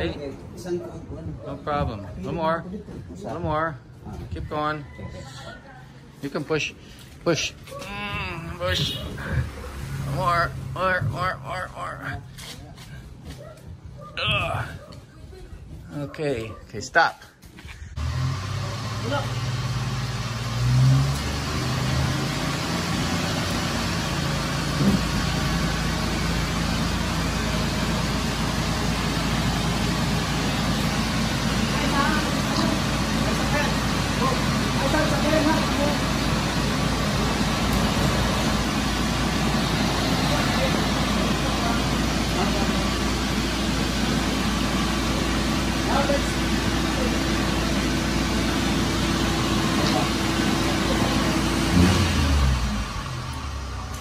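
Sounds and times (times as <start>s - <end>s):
truck engine running: 6.3s - 12.8s, 17.9s - 54.0s.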